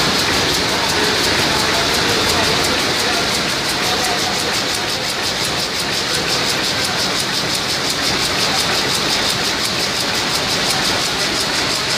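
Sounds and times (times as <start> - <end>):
loom mechanical clatter: 0.0 - 11.9.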